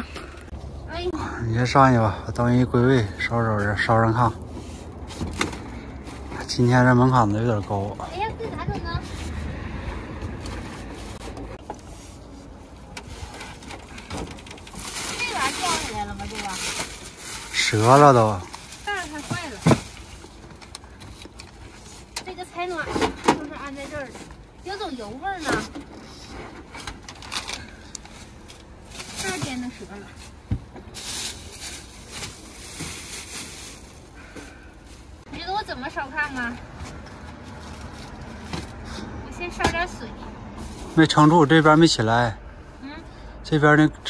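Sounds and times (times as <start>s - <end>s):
plastic bag rustling: 10.7s - 38.8s
woman talking: 35.3s - 36.6s, 39.2s - 40.3s.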